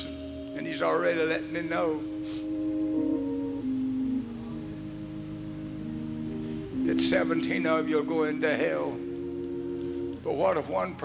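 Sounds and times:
organ chords: 0.0 - 11.0.

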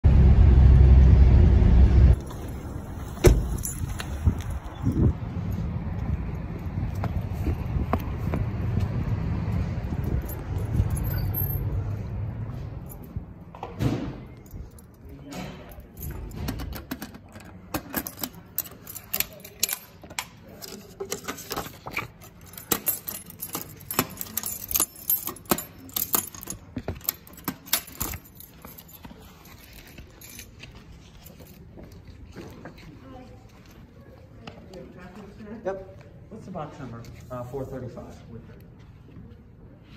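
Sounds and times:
vehicle rumble from inside cabin: 0.0 - 5.2
outdoor ambience: 0.0 - 39.9
keys jangling against metal door: 2.2 - 5.2, 9.8 - 32.1.

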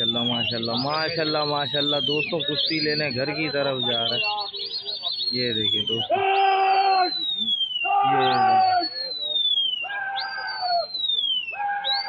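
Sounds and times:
rising and falling whistles: 0.0 - 12.0
man shouting drawn-out calls: 5.8 - 7.2, 7.9 - 9.0, 9.8 - 10.9, 11.5 - 12.0.

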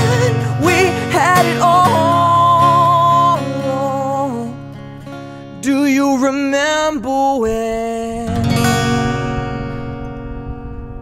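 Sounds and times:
acoustic guitar strummed chord: 0.0 - 11.0.

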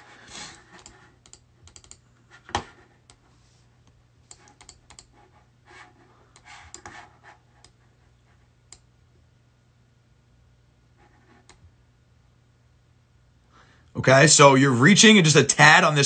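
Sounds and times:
typing on computer keyboard: 0.5 - 2.0, 4.3 - 5.1.

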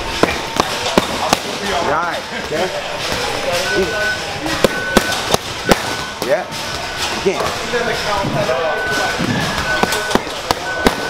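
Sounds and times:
boxing gloves smacking mitts: 0.1 - 1.6.

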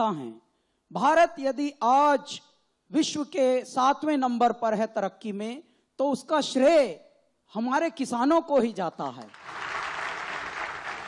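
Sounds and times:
audience applauding: 9.3 - 11.0.

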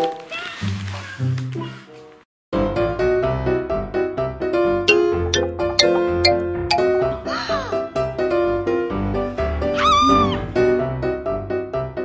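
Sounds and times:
bouncy children's keyboard music: 4.9 - 7.9.

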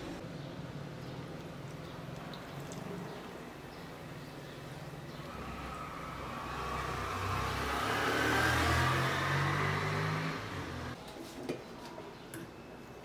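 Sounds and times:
beer pouring and fizzing: 1.4 - 3.5.

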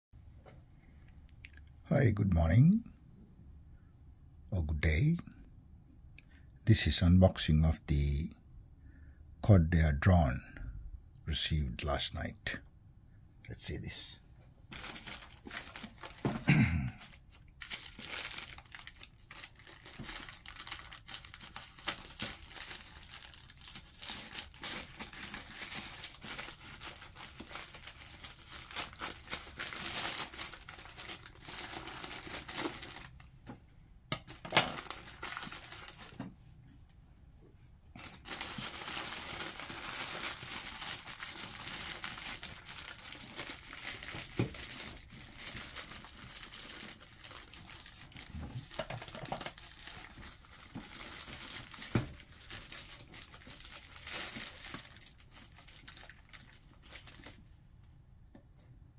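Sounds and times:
plastic tearing: 14.7 - 33.2, 34.3 - 36.1, 38.0 - 57.4
plastic envelope crinkling: 14.7 - 33.3, 34.3 - 36.2, 38.0 - 57.4.

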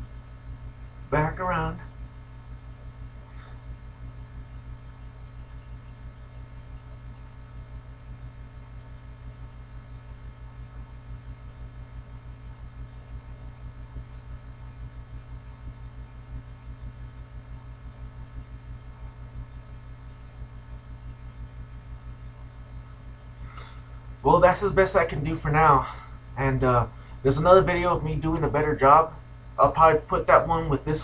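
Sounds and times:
steady low hum: 0.0 - 31.0
fast even throb: 23.9 - 31.0.

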